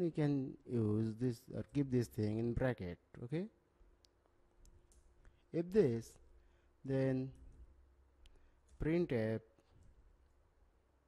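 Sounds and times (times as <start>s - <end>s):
faint computer keys clicking: 4.0s - 5.4s.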